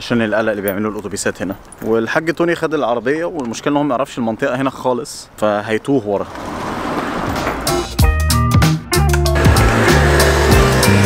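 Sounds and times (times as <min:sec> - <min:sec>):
music with bass and beat: 0:07.4 - 0:11.0
rising rush of noise: 0:09.3 - 0:11.0.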